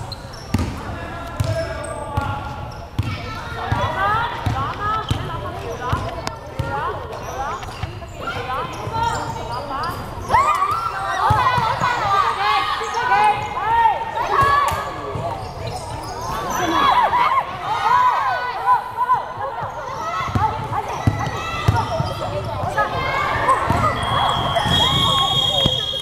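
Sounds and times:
shoe squeaks: 0:00.0 - 0:00.7, 0:07.2 - 0:11.3, 0:15.3 - 0:16.8, 0:21.2 - 0:22.8, 0:23.4 - 0:26.0.

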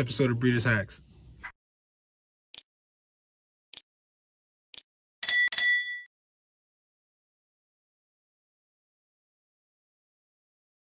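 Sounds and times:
small bell ringing: 0:05.2 - 0:06.1.

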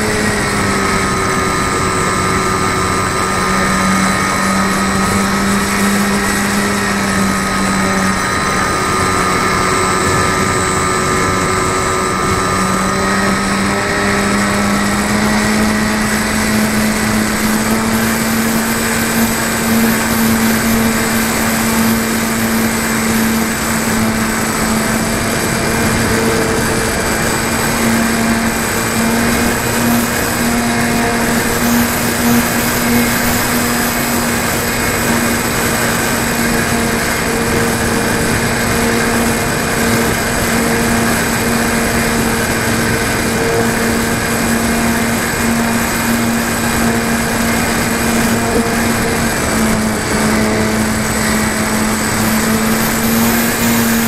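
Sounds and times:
model airplane motor buzzing: 0:00.0 - 0:54.0
rushing wind: 0:00.0 - 0:54.0.

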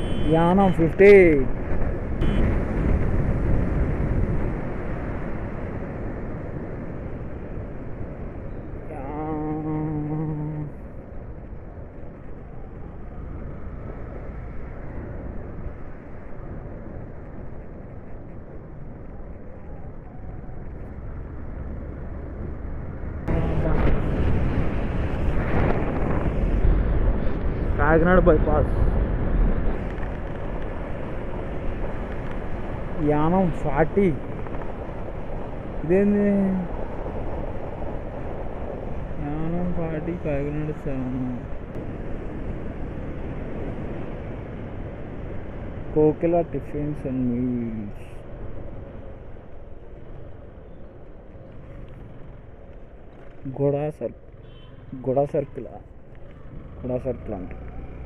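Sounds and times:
wind rushing over microphone: 0:00.0 - 0:58.0
motorcycle engine rumble: 0:55.6 - 0:58.0.

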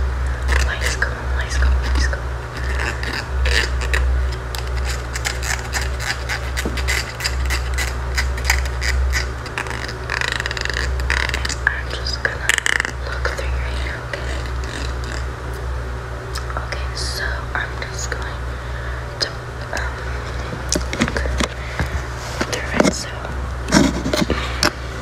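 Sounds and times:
steady low hum: 0:00.0 - 0:25.0
person whispering: 0:00.3 - 0:04.0, 0:09.5 - 0:15.2, 0:16.4 - 0:23.4
crisp clicks and scratches: 0:00.4 - 0:15.3, 0:19.8 - 0:24.8.

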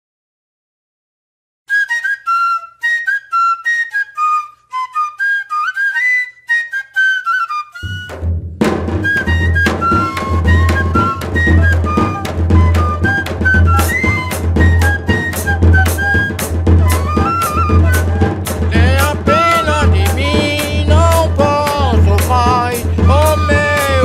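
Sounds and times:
fife melody: 0:01.7 - 0:24.0
bass drum snare and cymbal beat: 0:07.9 - 0:24.0.

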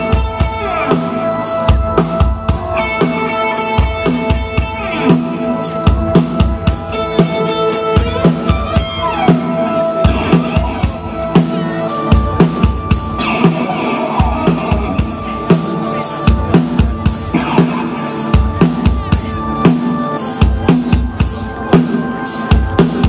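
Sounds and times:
drum kit beat: 0:00.0 - 0:23.0
electric guitar tones: 0:00.0 - 0:23.0.

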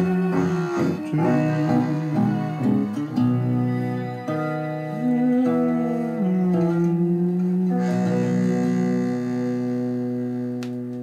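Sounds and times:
jazz guitar chord: 0:00.0 - 0:11.0
click: 0:10.6 - 0:11.0.

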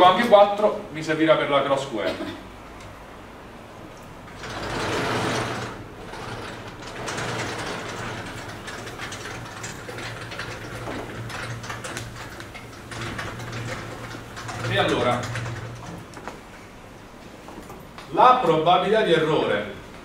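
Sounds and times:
rattling sliding mechanism: 0:04.3 - 0:16.2.

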